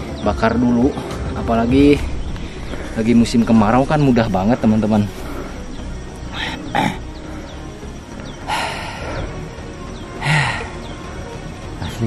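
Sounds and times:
background music: 0.0s - 12.0s
man breathing hard: 5.1s - 11.0s.

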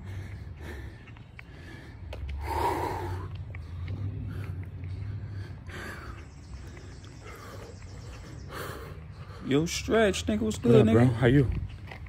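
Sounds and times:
man breathing hard through nose: 0.0s - 9.8s.

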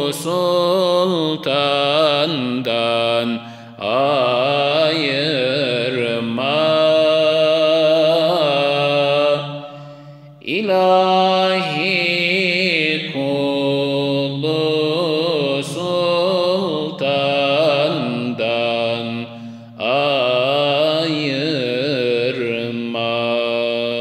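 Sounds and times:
man singing unaccompanied: 0.0s - 9.6s, 10.4s - 24.0s.

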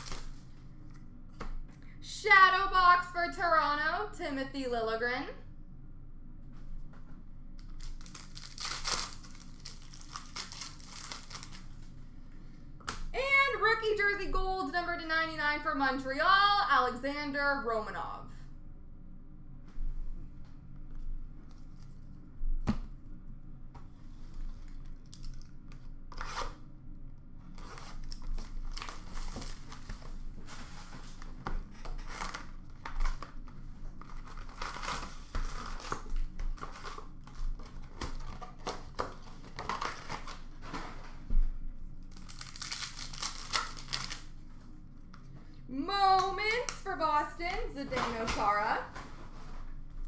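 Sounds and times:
plastic wrappers tearing and crinkling: 0.0s - 0.4s, 7.6s - 12.0s, 24.5s - 26.6s, 27.5s - 30.1s, 30.8s - 40.8s, 42.0s - 44.4s.

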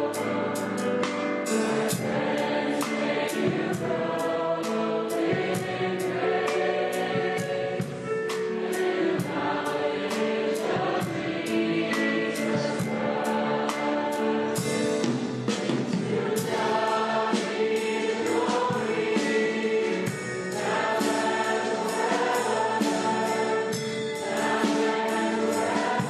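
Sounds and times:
choir singing gospel music: 0.0s - 26.0s
instrumental accompaniment: 0.0s - 26.0s
steady percussion beat: 0.1s - 26.0s.

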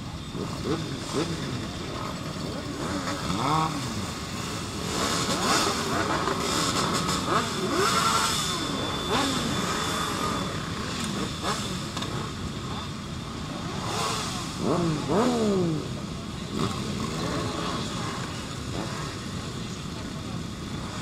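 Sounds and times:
motorcycle engines revving: 0.0s - 21.0s.

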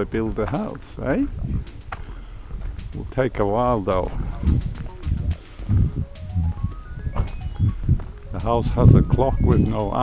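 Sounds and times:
rising run of pitched notes: 4.2s - 10.0s.

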